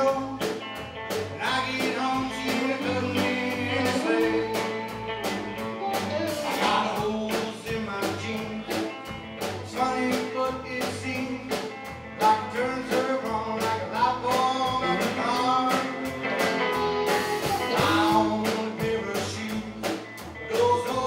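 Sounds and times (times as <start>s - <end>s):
man singing: 0.0s - 0.7s, 1.3s - 5.1s, 6.5s - 16.2s, 17.6s - 21.0s
drum kit beat: 0.0s - 21.0s
electric guitar: 0.0s - 21.0s.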